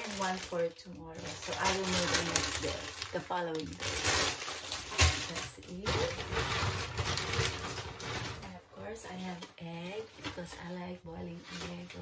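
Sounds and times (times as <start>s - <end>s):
plastic bag rustling: 0.0s - 12.0s.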